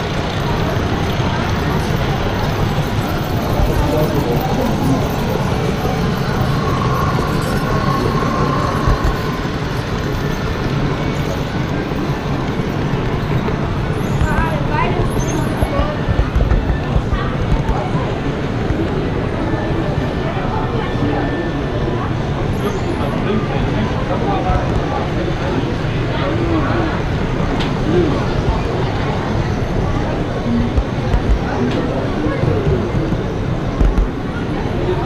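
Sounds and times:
indistinct chatter: 0:00.0 - 0:35.0
model train rumbling on track: 0:00.0 - 0:35.0.

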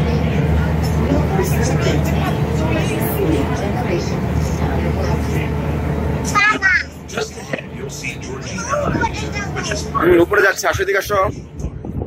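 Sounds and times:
boat engine droning: 0:00.0 - 0:12.0
passengers chattering: 0:00.0 - 0:12.0.

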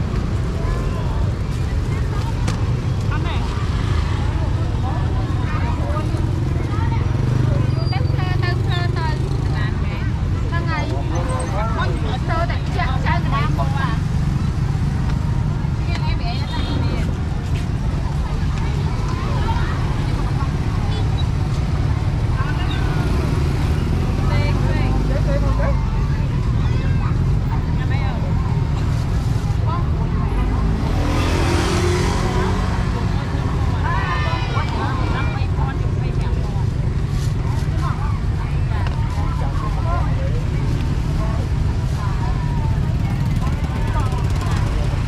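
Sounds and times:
low traffic rumble: 0:00.0 - 0:45.0
people chattering: 0:00.0 - 0:45.0
vehicle passing: 0:27.1 - 0:38.5.

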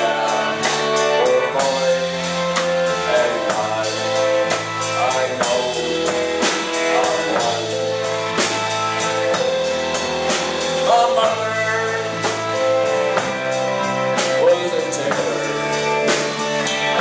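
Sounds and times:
male lead vocal: 0:00.0 - 0:08.5, 0:10.7 - 0:13.0, 0:14.2 - 0:17.0
drum kit: 0:00.0 - 0:17.0
electric guitars: 0:00.0 - 0:17.0
keyboard: 0:00.0 - 0:17.0.

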